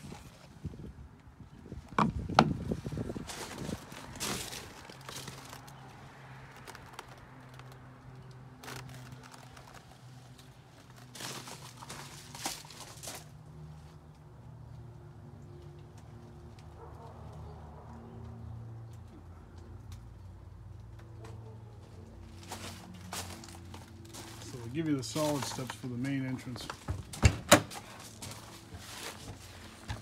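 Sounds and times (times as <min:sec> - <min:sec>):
footsteps on gravel: 0:22.3 - 0:26.9.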